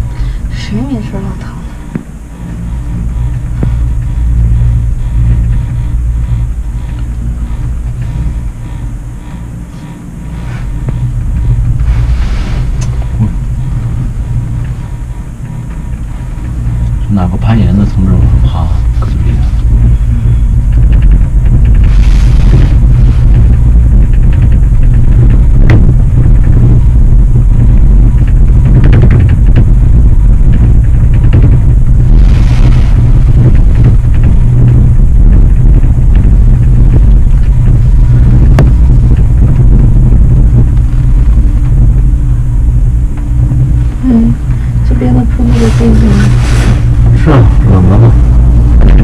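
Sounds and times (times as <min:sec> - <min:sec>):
cable car cabin rumble: 0:00.0 - 0:49.0.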